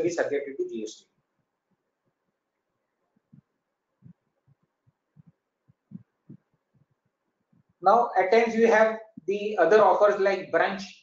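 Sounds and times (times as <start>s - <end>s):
faint low thuds: 3.2s - 7.8s.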